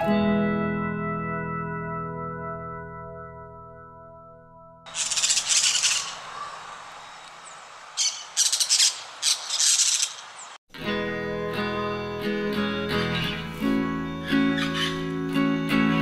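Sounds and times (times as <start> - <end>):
parakeet screeching: 4.9 - 6.7, 8.0 - 10.3, 14.5 - 15.0
plucked acoustic guitar music: 10.8 - 16.0.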